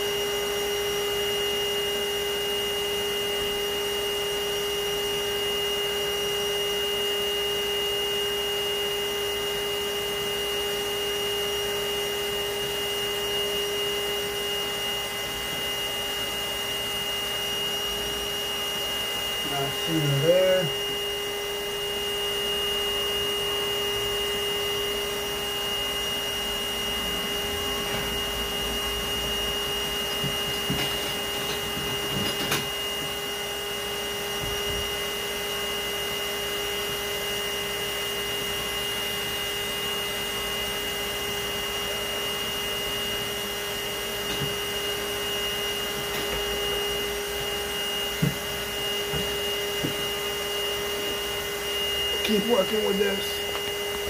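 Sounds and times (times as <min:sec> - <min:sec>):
vacuum motor whining: 0:00.0 - 0:54.0.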